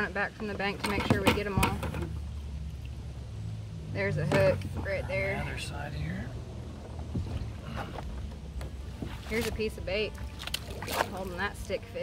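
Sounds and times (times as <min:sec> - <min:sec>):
steady low rumble: 0:01.4 - 0:12.0
water moving around kayak: 0:06.4 - 0:12.0.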